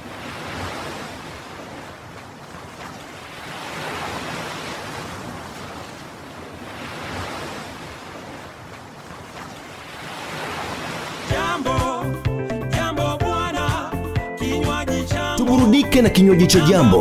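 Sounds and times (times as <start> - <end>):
small waves breaking on sand: 0.0 - 11.4.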